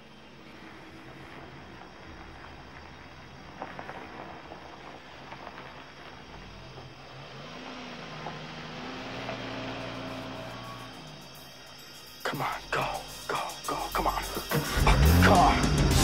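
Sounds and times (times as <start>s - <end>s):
car engine and road noise: 0.0s - 16.0s
film music score: 9.9s - 16.0s.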